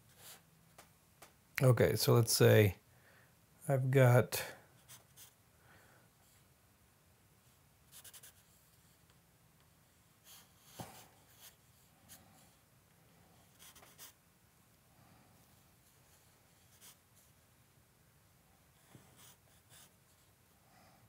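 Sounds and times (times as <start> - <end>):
charcoal scratching on paper: 8.0 - 9.0, 13.4 - 14.2.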